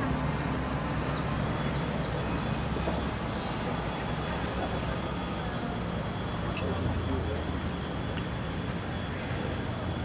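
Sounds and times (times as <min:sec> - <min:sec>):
faint indistinct voices: 0:00.8 - 0:10.0.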